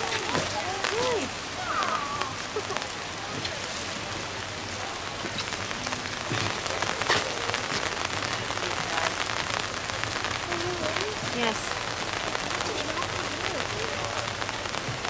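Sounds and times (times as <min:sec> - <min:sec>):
steady rain falling: 0:00.0 - 0:15.0.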